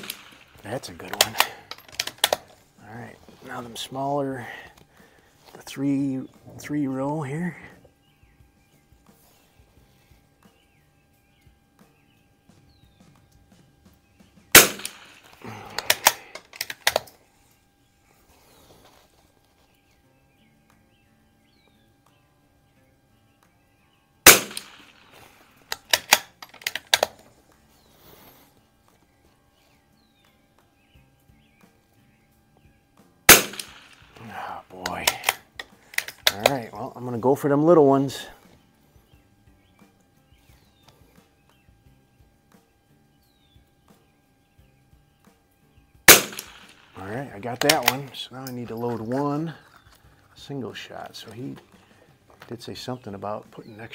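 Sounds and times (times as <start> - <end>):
rifle shots: 0.0 - 2.5, 14.5 - 17.0, 24.2 - 27.2, 33.3 - 34.2, 46.0 - 47.0
rifle bolt clicking: 1.2 - 2.5, 15.8 - 17.2, 25.7 - 27.2, 46.1 - 46.7.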